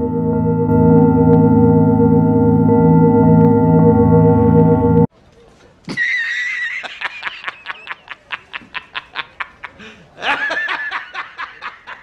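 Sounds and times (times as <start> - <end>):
man laughing hard: 5.9 - 12.0.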